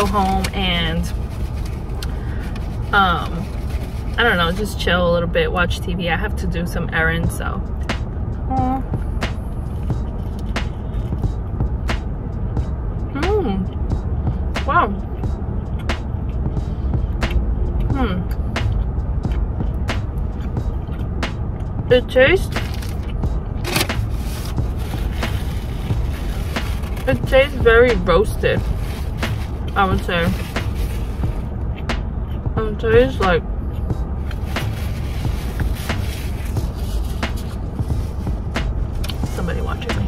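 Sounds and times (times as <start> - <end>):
car interior rumble: 0.0 - 40.0
woman humming: 8.5 - 8.9, 13.1 - 13.7, 17.9 - 18.4.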